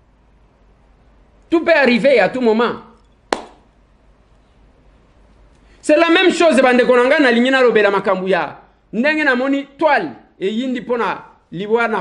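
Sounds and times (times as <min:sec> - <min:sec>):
single sharp tap: 0:03.3 - 0:03.6.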